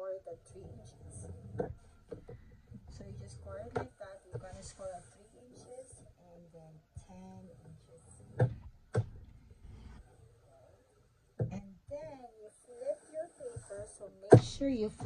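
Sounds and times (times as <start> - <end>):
quiet indistinct speech: 0.0 - 1.9, 2.8 - 8.6, 10.2 - 15.0.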